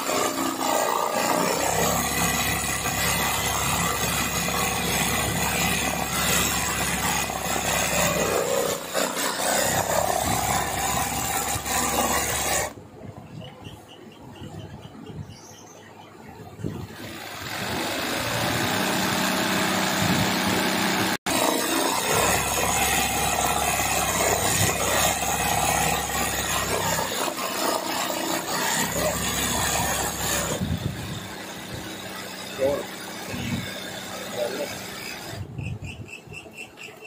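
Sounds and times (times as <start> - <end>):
sewing machine running fast: 0.0 - 12.7, 17.0 - 35.4.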